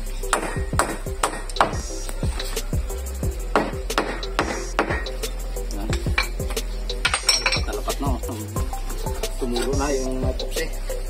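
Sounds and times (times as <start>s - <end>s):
stone striking chisel into wood: 0.3s - 1.8s, 3.5s - 5.0s.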